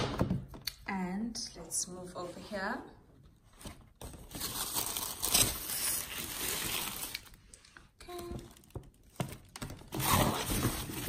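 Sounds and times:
tissue paper crinkling and rustling: 0:04.0 - 0:07.4, 0:08.4 - 0:11.0.

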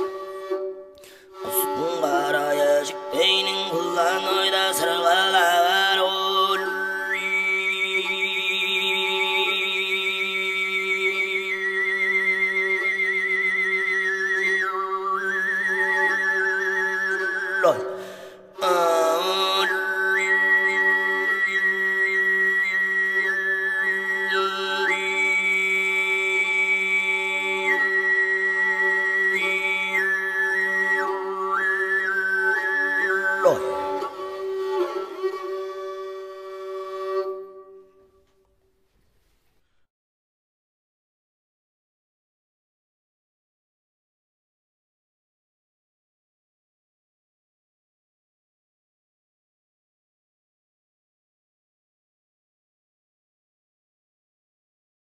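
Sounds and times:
person breathing: 0:01.0 - 0:01.4, 0:17.8 - 0:18.6
throat singing overtone melody: 0:01.4 - 0:06.6, 0:17.6 - 0:20.0.

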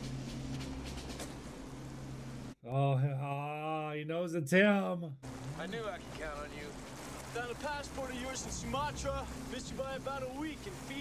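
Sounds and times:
steady rain: 0:00.0 - 0:02.6, 0:05.2 - 0:11.0
low steady drone: 0:05.2 - 0:11.0.

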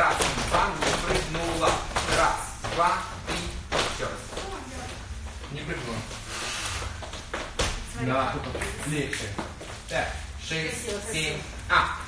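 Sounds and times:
feet shuffling on studio floor: 0:00.0 - 0:11.7.

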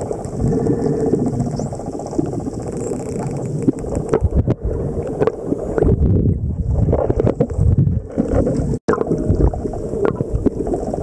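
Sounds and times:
underwater water rush: 0:00.0 - 0:11.0.

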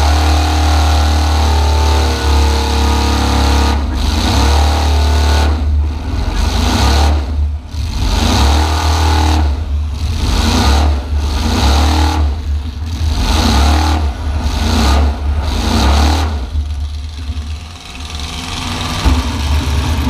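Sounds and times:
pickup engine revving: 0:00.0 - 0:20.0.

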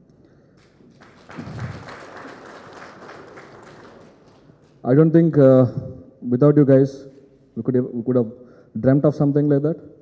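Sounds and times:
audience applauding: 0:00.6 - 0:04.8.

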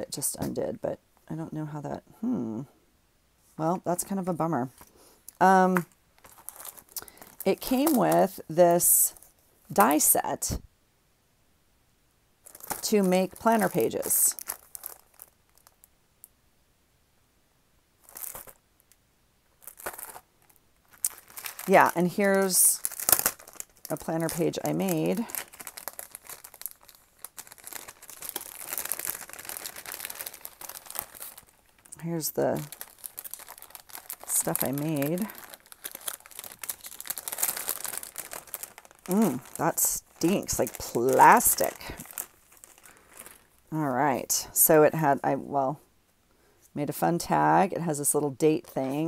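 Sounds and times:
plastic bag crinkling: 0:04.0 - 0:10.1, 0:12.4 - 0:15.9, 0:18.0 - 0:18.9, 0:19.5 - 0:44.7
packaging rustling: 0:04.7 - 0:08.5, 0:12.4 - 0:15.9, 0:18.0 - 0:18.9, 0:19.5 - 0:43.7.

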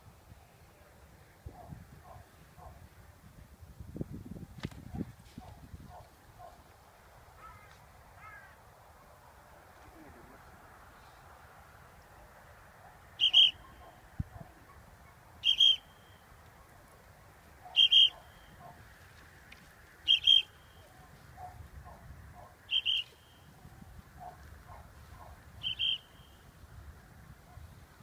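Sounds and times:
sharp high whistle blasts: 0:13.2 - 0:13.6, 0:15.4 - 0:16.2, 0:20.1 - 0:20.8.

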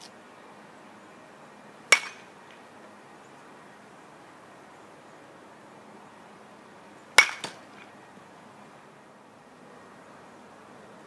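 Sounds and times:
bat hitting ball: 0:01.9 - 0:02.3, 0:07.2 - 0:07.9.

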